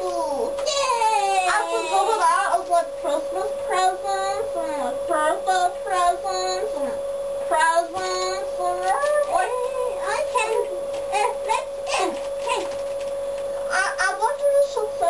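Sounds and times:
steady held tone: 0.0 - 15.0
child singing wordless tune: 3.3 - 11.6.

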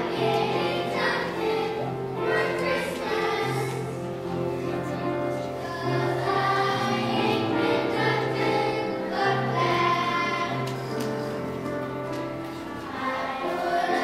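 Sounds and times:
children's choir singing: 0.0 - 14.0.

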